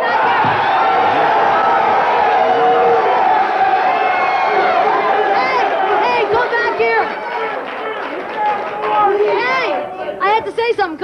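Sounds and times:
studio audience chatter: 0.0s - 11.0s
voices arguing: 0.0s - 11.0s.

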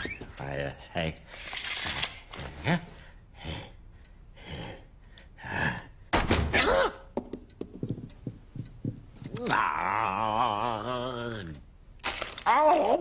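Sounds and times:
breathy cartoon vocal noises: 3.0s - 7.0s, 9.4s - 11.6s.

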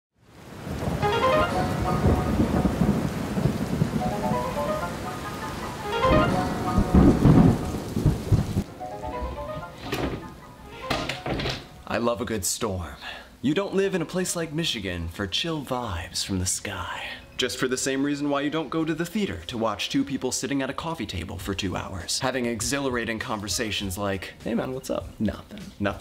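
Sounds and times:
rain falling: 0.2s - 26.0s
rolling thunder: 0.5s - 10.4s
rising run of musical notes: 1.0s - 3.0s, 4.0s - 8.0s, 8.7s - 10.9s.

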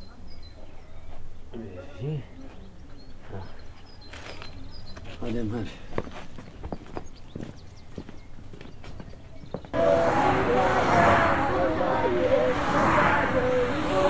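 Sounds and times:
footsteps on dirt: 4.1s - 9.7s
children shouting: 9.8s - 14.0s.

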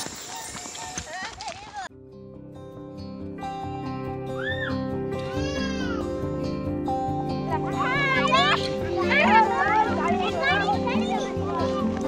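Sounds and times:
background music: 1.9s - 12.0s
children talking and calling out: 4.3s - 6.4s, 7.3s - 12.0s.

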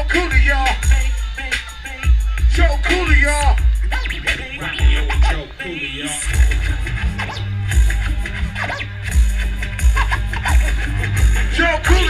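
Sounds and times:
hip hop beat with bass kicks: 0.0s - 12.0s
record scratching: 0.0s - 12.0s.

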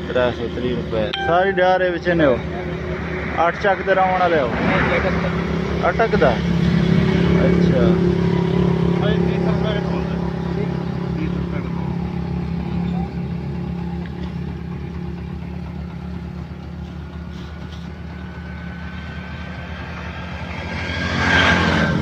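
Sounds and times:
vehicle engine hum: 0.0s - 22.0s
vehicle passing close by: 18.3s - 22.0s.

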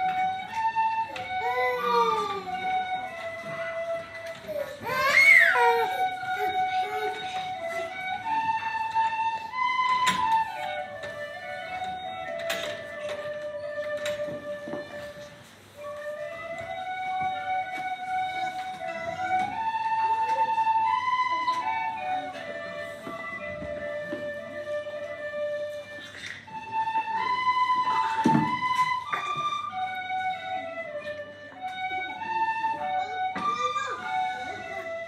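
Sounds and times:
children playing tin whistles: 0.0s - 35.0s.

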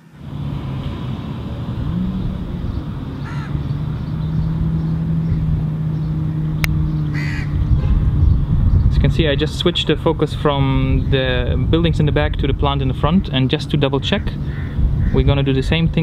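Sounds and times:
low city rumble with hum: 0.0s - 16.0s
short bird calls: 7.0s - 7.7s.

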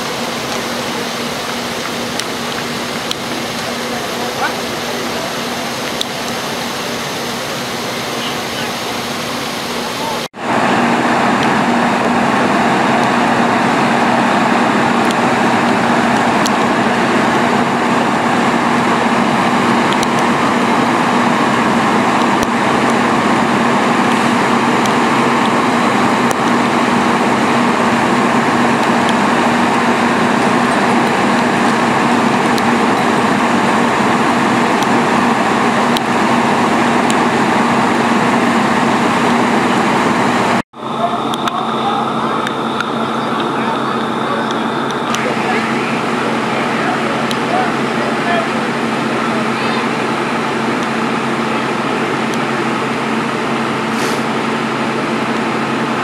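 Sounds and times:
fire engine diesel engine droning: 0.0s - 56.0s
steady hum: 0.0s - 56.0s.

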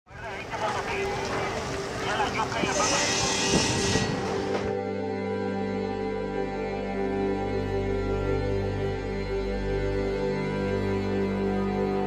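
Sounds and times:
people talking: 0.1s - 3.6s
vehicle traffic: 0.1s - 4.7s
loud hiss: 2.6s - 4.6s.

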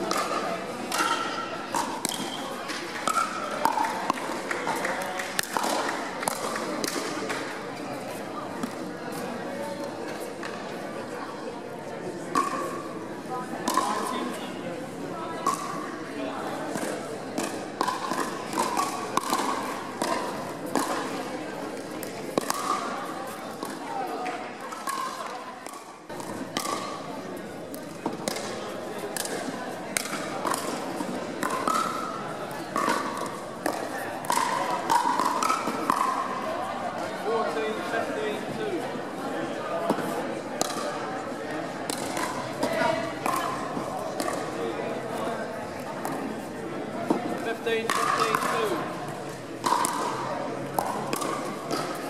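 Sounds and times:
murmur of voices in a hall: 0.0s - 52.0s
paddles hitting plastic ball: 0.1s - 7.5s, 13.7s - 14.0s, 16.7s - 21.2s, 21.8s - 22.9s, 23.6s - 27.0s, 27.7s - 36.2s, 39.9s - 40.9s, 41.9s - 44.6s, 47.1s - 48.9s, 49.6s - 50.1s, 50.8s - 52.0s.

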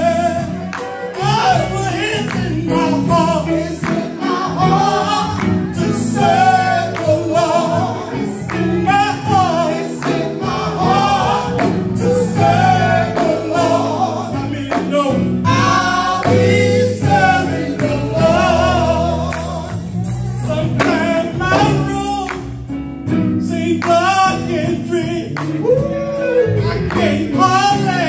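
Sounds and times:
vocalists singing: 0.0s - 22.8s, 23.4s - 28.0s
drums: 0.0s - 28.0s
electric bass guitar: 0.0s - 28.0s.

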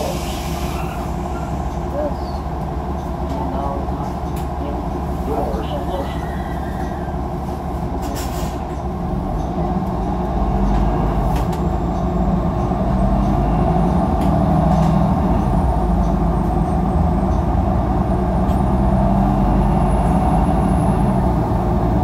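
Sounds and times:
bus engine and drivetrain drone: 0.0s - 22.0s
road rumble: 0.0s - 22.0s.

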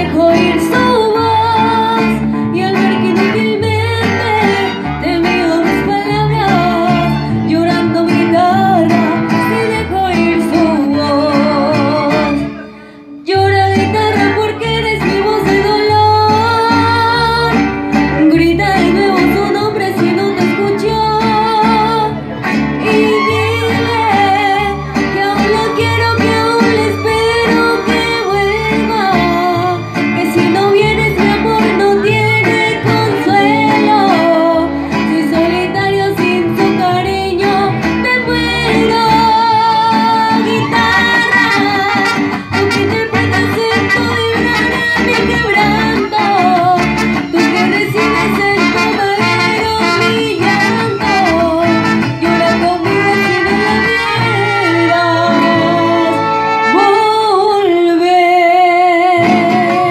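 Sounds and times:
violins: 0.0s - 57.2s
strummed guitars: 0.0s - 59.9s
woman singing with vibrato: 0.0s - 59.9s.

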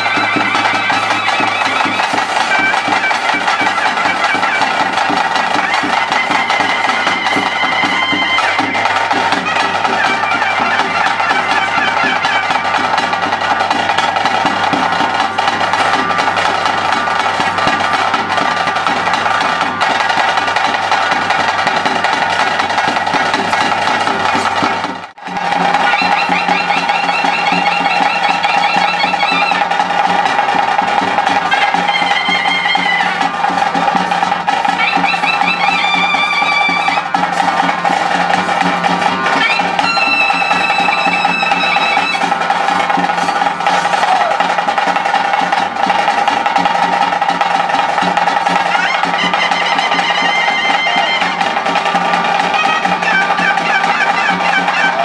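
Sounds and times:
shrill reed wind instrument melody: 0.0s - 55.0s
steady drumming: 0.0s - 55.0s.

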